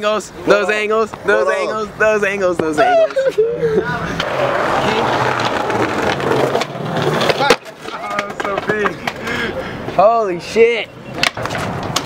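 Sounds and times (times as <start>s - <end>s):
skateboard wheels rolling on concrete: 0.0s - 12.0s
skateboard clack: 4.2s - 9.4s, 11.1s - 12.0s.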